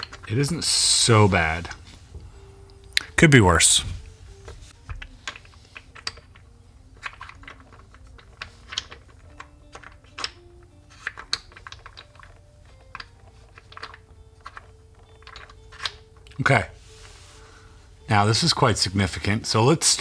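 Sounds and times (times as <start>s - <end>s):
wooden blocks clicking: 0.0s - 0.4s, 4.9s - 16.5s
faint background music: 0.0s - 20.0s.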